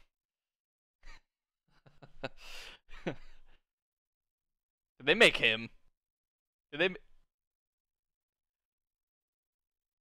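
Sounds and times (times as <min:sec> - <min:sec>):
man laughing under his breath: 0:01.0 - 0:03.6.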